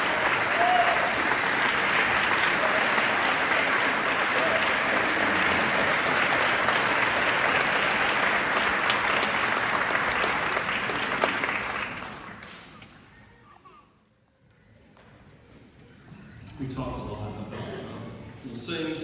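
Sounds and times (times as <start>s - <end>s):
audience applauding: 0.0s - 13.1s.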